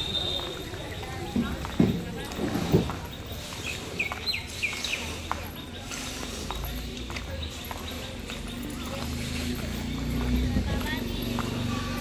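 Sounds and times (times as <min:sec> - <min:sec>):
sandal footsteps on pavement: 0:00.0 - 0:12.0
background voices: 0:00.8 - 0:12.0.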